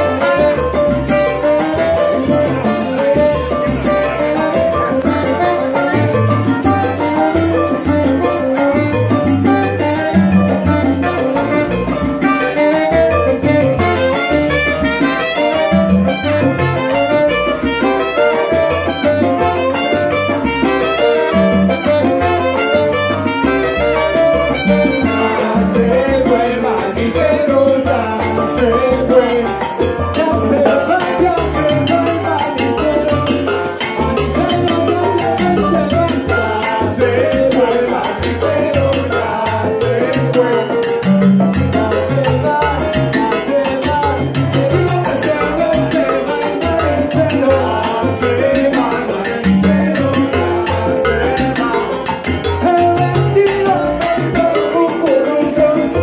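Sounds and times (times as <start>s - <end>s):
salsa band playing: 0.0s - 56.0s.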